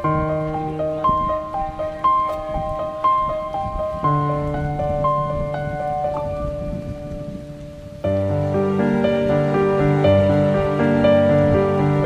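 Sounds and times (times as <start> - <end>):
background music held notes: 0.0 - 12.0
low rustling noise: 0.0 - 12.0.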